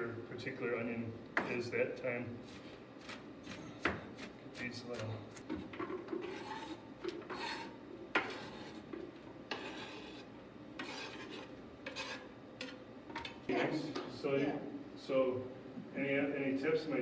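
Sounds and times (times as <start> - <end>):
knife scraping cutting board: 6.1 - 12.8.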